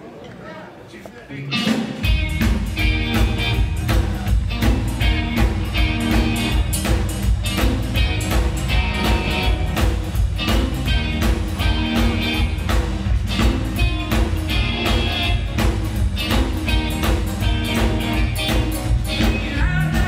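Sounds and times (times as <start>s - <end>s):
electric guitars: 1.4s - 20.0s
bass guitar: 1.5s - 20.0s
drum kit beat: 1.5s - 20.0s.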